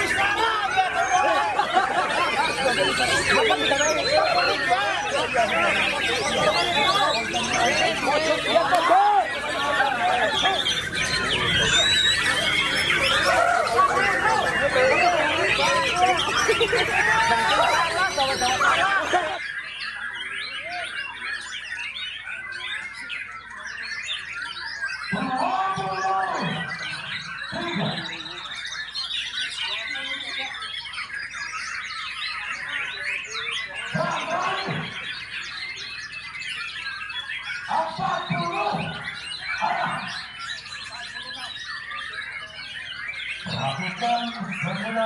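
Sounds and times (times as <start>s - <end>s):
birds singing whistles and trills: 0.0s - 45.0s
crowd voices: 0.0s - 45.0s.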